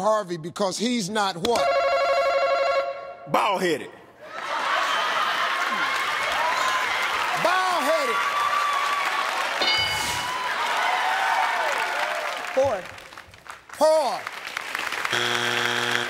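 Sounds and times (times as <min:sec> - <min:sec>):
audience applauding and cheering: 0:04.2 - 0:16.0
shouts and whoops: 0:04.3 - 0:12.5.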